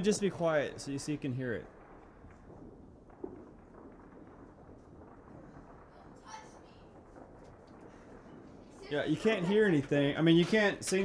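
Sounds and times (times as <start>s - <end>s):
distant fireworks popping: 0.0s - 11.0s
low background rumble: 0.0s - 11.0s
sharp firework bang: 1.5s - 10.8s.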